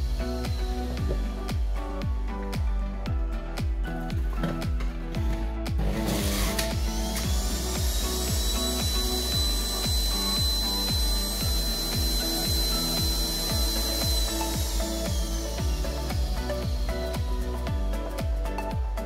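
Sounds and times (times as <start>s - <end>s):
juicer motor whine: 0.0s - 1.4s, 5.8s - 18.0s
background music with beat: 0.0s - 19.0s.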